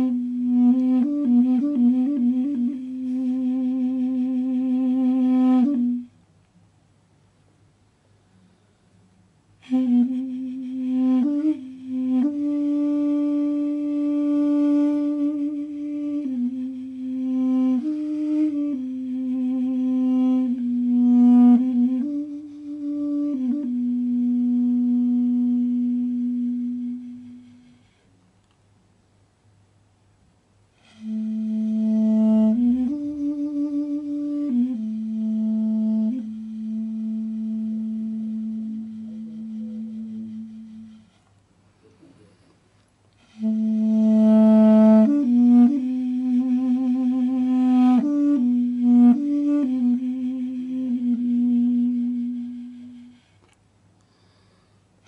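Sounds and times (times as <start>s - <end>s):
duduk playing slow melody: 0.0s - 6.2s, 9.6s - 28.0s, 30.8s - 41.3s, 43.2s - 53.6s
low wind instrument note: 30.8s - 41.2s, 43.2s - 53.4s.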